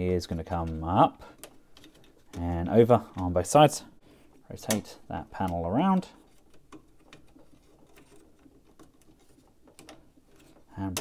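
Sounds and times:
plastic toy panels clicking: 0.4s - 3.5s, 4.6s - 11.0s.

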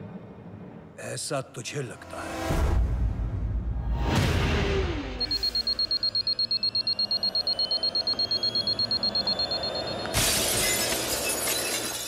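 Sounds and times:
glass fragments tinkling: 10.2s - 12.0s
window glass shattering: 10.2s - 12.0s.

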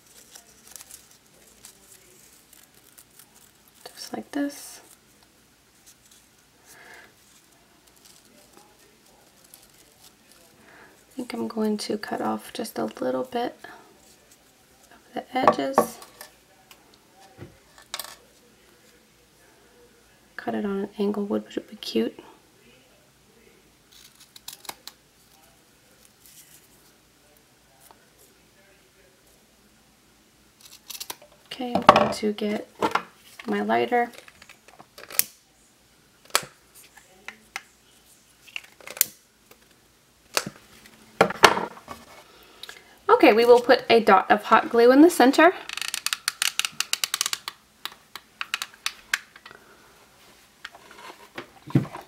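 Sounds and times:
ribbon handling noise: 0.0s - 4.1s
scratchy ribbon rustle: 0.0s - 11.5s.

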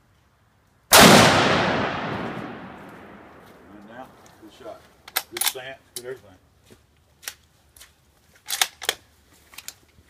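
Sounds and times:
rifle shot with echo: 0.9s - 3.8s.

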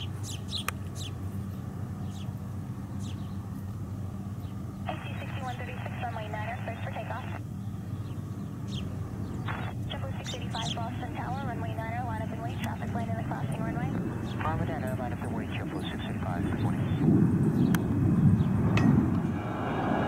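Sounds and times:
distant jet rumble: 0.0s - 20.0s
radio call: 4.9s - 7.4s, 9.4s - 17.1s.

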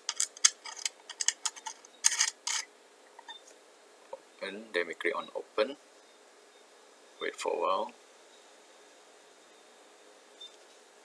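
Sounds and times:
scratchy threads turning: 0.0s - 2.7s.

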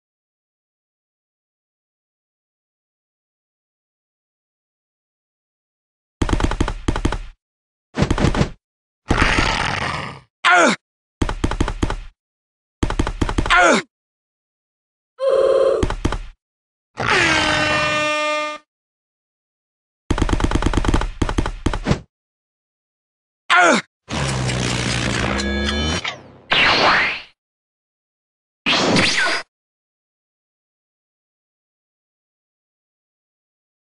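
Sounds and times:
cartoon running footsteps: 6.2s - 7.4s, 8.0s - 8.6s, 11.2s - 12.2s, 12.8s - 13.6s, 15.8s - 16.4s, 20.1s - 22.1s.

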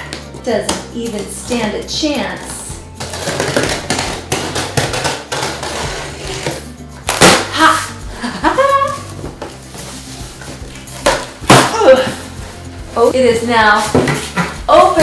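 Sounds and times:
background music: 0.0s - 15.0s
packing tape cut and torn: 3.0s - 7.6s.

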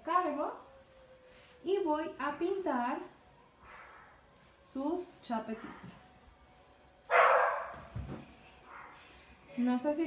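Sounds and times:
dog barking: 7.1s - 7.9s, 8.7s - 9.0s.

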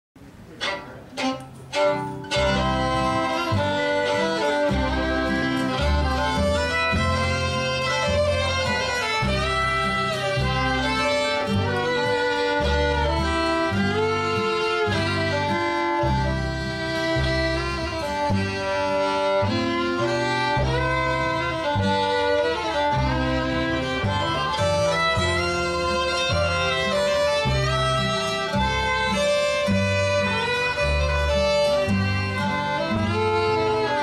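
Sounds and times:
country string band: 0.2s - 34.0s.

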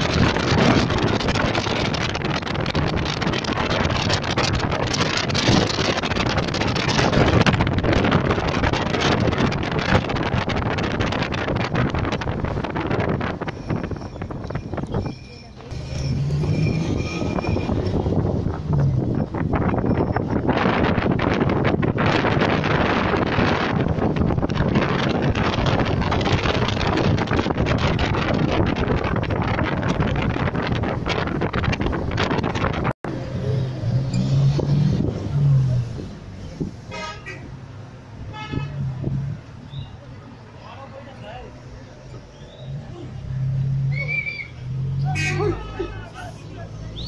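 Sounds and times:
wind buffeting microphone: 0.0s - 40.0s
car road noise: 0.0s - 47.0s
street traffic: 0.0s - 47.0s
vehicle horn tooting: 36.9s - 37.5s, 38.3s - 38.9s, 45.0s - 46.2s.

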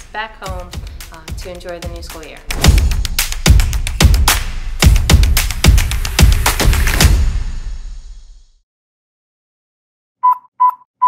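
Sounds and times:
electronic test-tone beeps: 10.2s - 10.9s.

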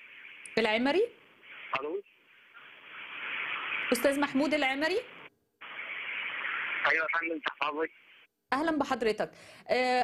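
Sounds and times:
telephone line hiss: 0.0s - 8.3s.

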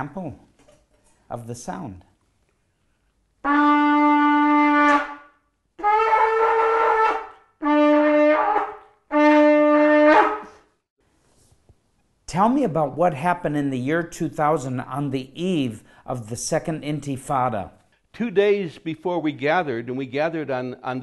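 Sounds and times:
trumpet blasts: 3.4s - 10.6s.

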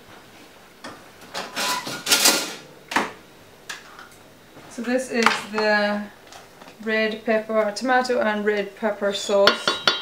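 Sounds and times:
kitchen scraping and clattering: 1.3s - 2.7s.

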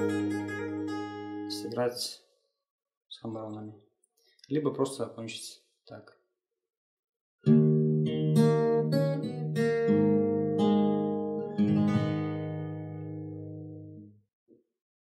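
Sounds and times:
fingerstyle acoustic guitar: 0.0s - 1.7s, 7.4s - 14.0s.

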